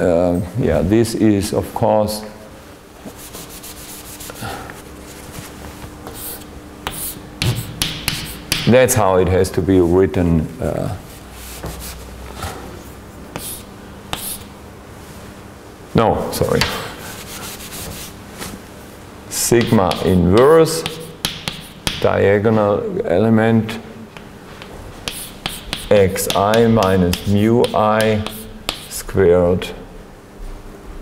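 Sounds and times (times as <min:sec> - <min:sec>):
cloth rubbing on chalkboard: 0:03.0 - 0:08.5, 0:11.0 - 0:12.2, 0:13.3 - 0:14.5, 0:17.0 - 0:18.6, 0:20.7 - 0:21.8, 0:24.9 - 0:29.0
chalk tapping on board: 0:06.0 - 0:08.7, 0:11.6 - 0:12.0, 0:13.3 - 0:14.5, 0:16.6 - 0:18.2, 0:19.6 - 0:22.1, 0:24.6 - 0:29.0.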